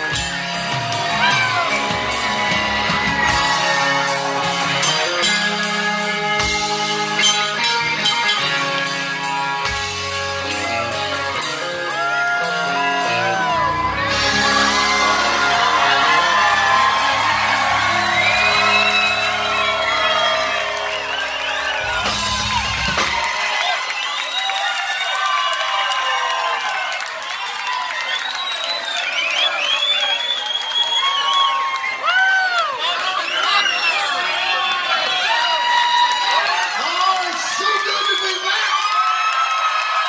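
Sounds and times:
live rock band playing: 0:00.0 - 0:24.0
crowd cheering and whooping: 0:00.0 - 0:40.0.

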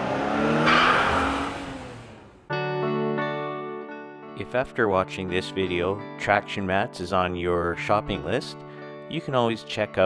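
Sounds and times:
car engine and tyre noise: 0:00.0 - 0:02.5.

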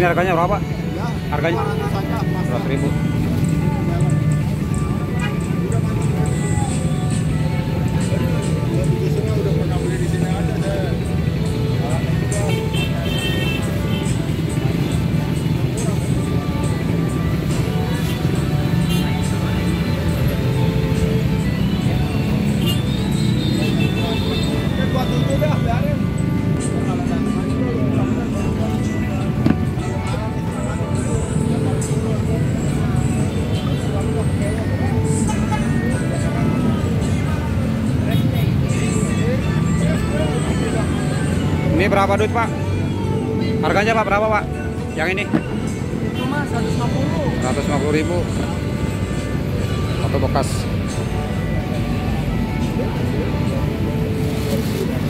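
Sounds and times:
background music: 0:00.0 - 0:55.0
traffic rumble: 0:00.0 - 0:55.0.

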